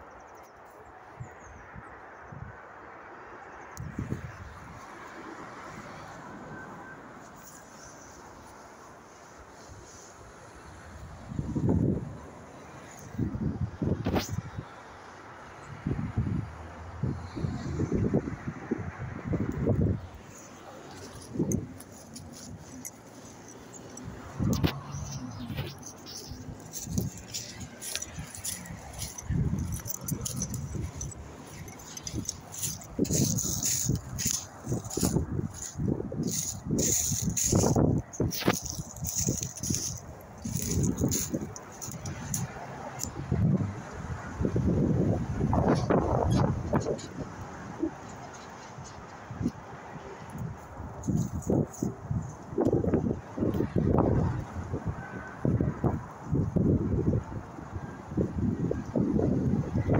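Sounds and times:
twigs and leaves crackling underfoot: 19.3 - 54.6.

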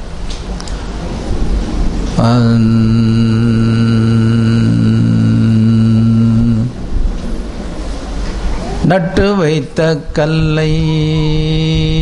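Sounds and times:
man singing a long note: 2.2 - 6.9, 8.8 - 12.0.

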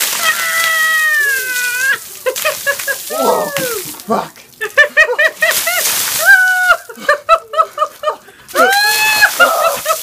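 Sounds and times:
water pouring and splashing: 0.0 - 10.0
man yelling high-pitched: 3.1 - 3.9.

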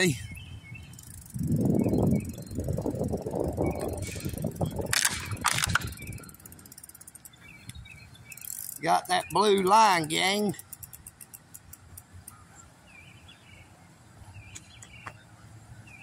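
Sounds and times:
low mechanical rattling: 0.8 - 12.4
sharp clicks: 3.8 - 12.4.

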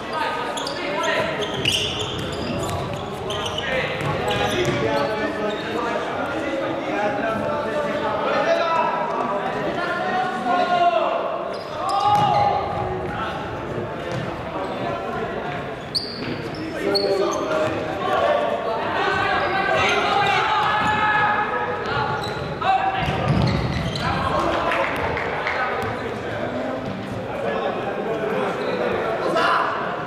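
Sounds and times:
players shouting: 17.6 - 25.3.

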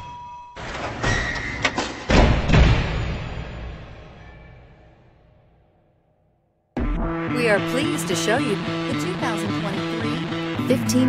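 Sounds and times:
heavy deep impacts ringing: 0.6 - 5.6.

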